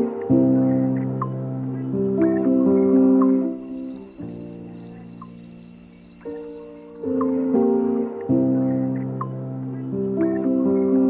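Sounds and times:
soft music with held chords: 0.0 - 11.0
crickets chirping: 3.3 - 7.2.

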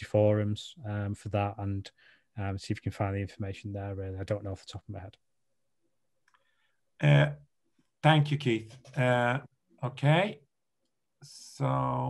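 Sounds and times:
person speaking: 2.4 - 5.2, 7.0 - 7.4, 8.0 - 10.4.

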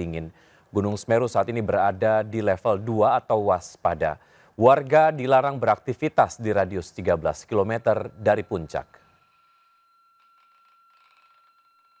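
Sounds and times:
faint high-pitched tone: 6.8 - 12.0.

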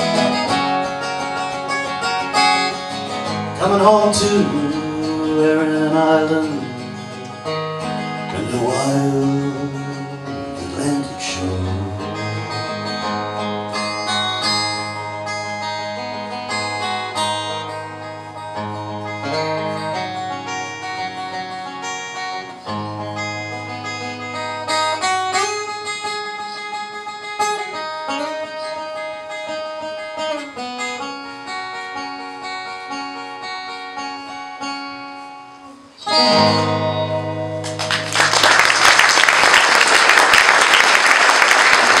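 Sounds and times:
acoustic guitar playing: 0.0 - 42.0.

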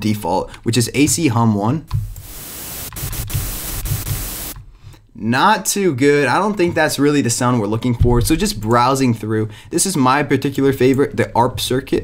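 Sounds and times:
synthesizer hiss over low hum: 2.0 - 4.6.

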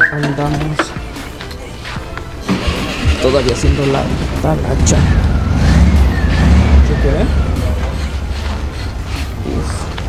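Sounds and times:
steady low rumble: 2.5 - 10.0
siren-like rising and falling tone: 4.5 - 8.4.

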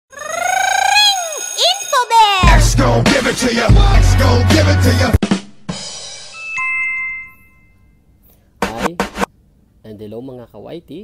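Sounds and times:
high-pitched voice-like call: 0.1 - 2.5.

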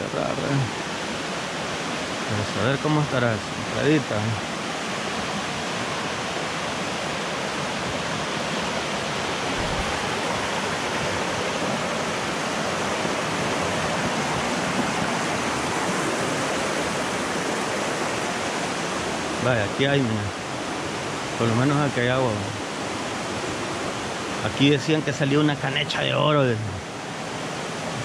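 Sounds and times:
water rushing over boulders: 0.0 - 28.0.

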